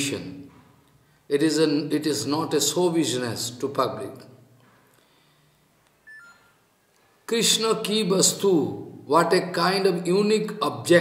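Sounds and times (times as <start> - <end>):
two-note electronic beep: 6.1 - 6.6.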